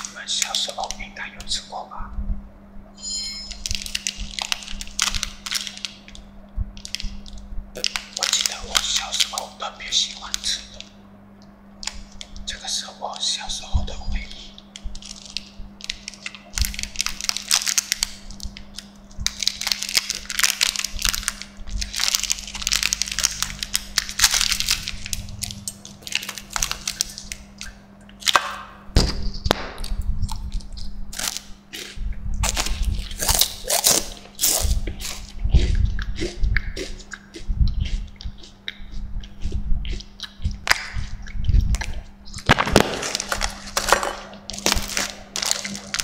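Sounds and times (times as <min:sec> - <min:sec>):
plastic wrapper crinkling: 0:03.6 - 0:10.9, 0:14.7 - 0:27.6, 0:30.5 - 0:31.5, 0:42.4 - 0:46.0
wafer crunching and chewing: 0:03.6 - 0:11.0, 0:14.5 - 0:28.6, 0:29.5 - 0:46.0.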